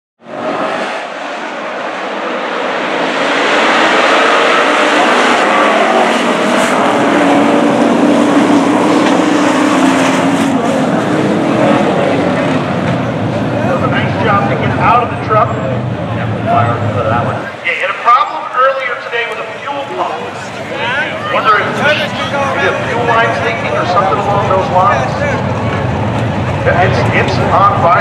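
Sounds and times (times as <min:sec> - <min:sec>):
race truck engines droning: 0:00.2 - 0:28.0.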